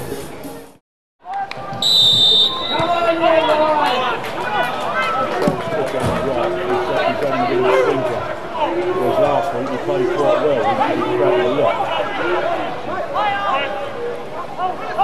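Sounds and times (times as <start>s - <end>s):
people shouting and talking: 1.2s - 15.0s
referee's whistle blast: 1.8s - 3.2s.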